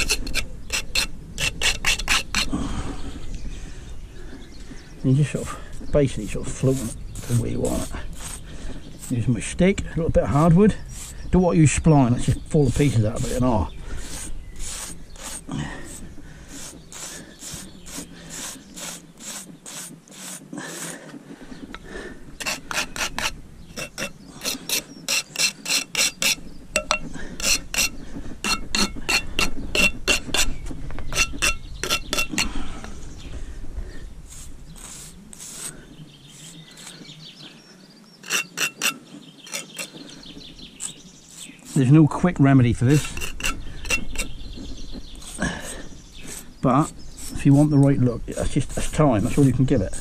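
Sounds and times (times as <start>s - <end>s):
stick scraping mortar: 0.0s - 2.6s, 6.0s - 21.1s, 21.7s - 32.6s, 34.3s - 37.1s, 38.2s - 40.0s, 40.7s - 50.0s
trowel scraping mortar: 0.0s - 2.6s, 6.1s - 9.5s, 10.2s - 11.2s, 11.8s - 21.1s, 22.4s - 32.6s, 34.3s - 37.1s, 38.2s - 39.9s, 40.8s - 44.4s, 45.1s - 50.0s.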